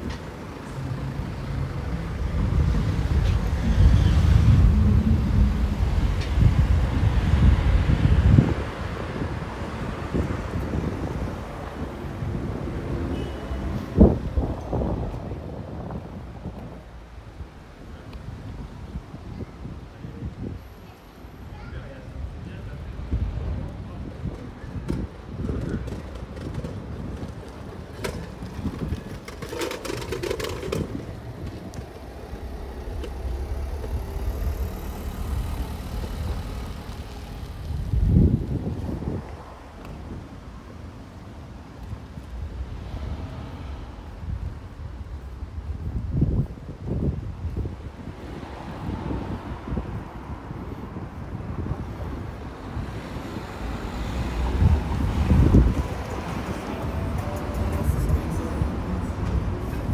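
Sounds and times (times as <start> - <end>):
cars driving past: 0.0 - 17.0, 26.2 - 59.9
wind buffeting microphone: 0.0 - 59.9
low rumble: 1.3 - 8.6, 30.1 - 40.2.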